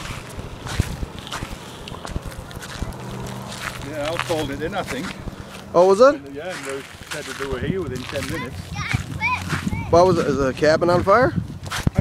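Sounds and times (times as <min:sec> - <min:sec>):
footsteps crunching on gravel: 0:00.0 - 0:12.0.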